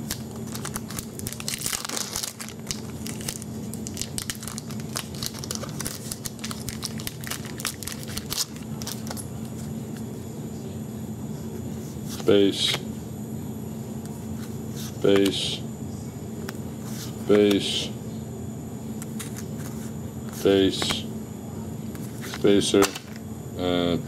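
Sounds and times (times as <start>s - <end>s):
foil wrapper tearing and crinkling: 0.0s - 9.2s.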